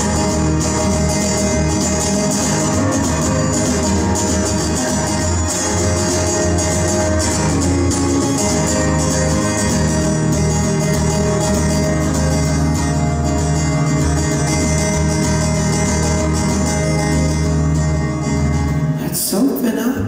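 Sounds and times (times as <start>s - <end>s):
fingerpicked acoustic guitar: 0.0s - 20.0s.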